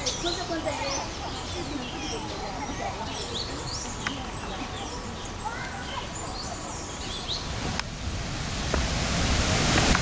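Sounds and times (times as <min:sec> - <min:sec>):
bird chirps: 0:00.0 - 0:07.5
wind on microphone: 0:06.9 - 0:10.0.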